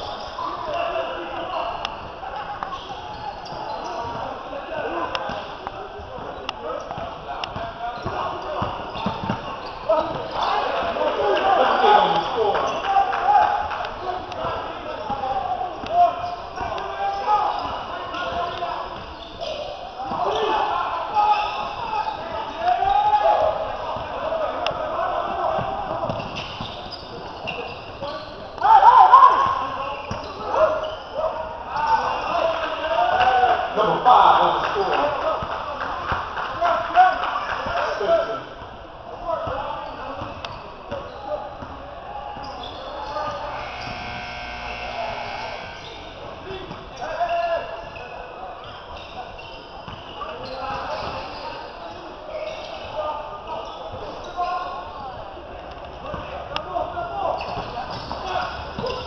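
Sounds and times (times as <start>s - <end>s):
crowd shouting: 8.0s - 18.5s, 28.6s - 29.8s.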